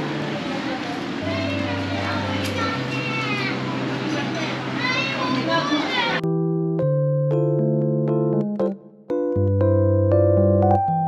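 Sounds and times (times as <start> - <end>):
chatter of voices: 0.0 - 6.2.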